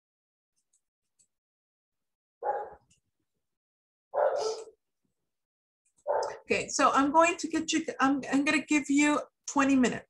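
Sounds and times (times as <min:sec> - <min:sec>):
dog barking: 0:02.4 - 0:02.8, 0:04.1 - 0:04.8, 0:06.0 - 0:06.4.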